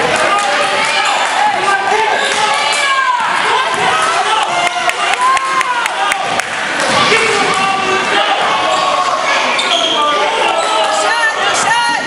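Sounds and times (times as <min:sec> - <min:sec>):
players and spectators shouting: 0:00.0 - 0:12.0.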